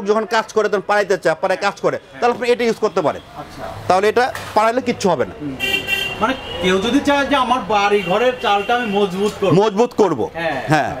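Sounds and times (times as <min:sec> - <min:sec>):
man talking: 0:00.0 - 0:05.6, 0:06.2 - 0:11.0
vehicle horn: 0:05.6 - 0:07.0, 0:07.8 - 0:09.2.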